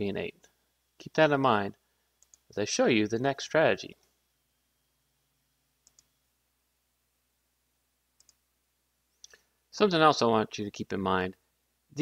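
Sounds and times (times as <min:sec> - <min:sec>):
faint computer mouse clicks: 0:02.2 - 0:02.5, 0:05.8 - 0:06.1, 0:08.2 - 0:08.4.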